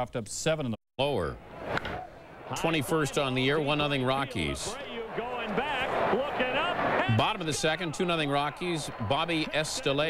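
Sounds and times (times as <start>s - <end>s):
man talking: 2.5s - 10.0s.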